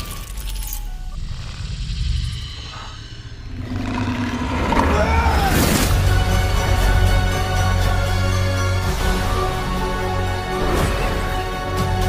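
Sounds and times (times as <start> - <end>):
low hum: 0.1 - 6.9
deep low rumble: 1.2 - 5.9.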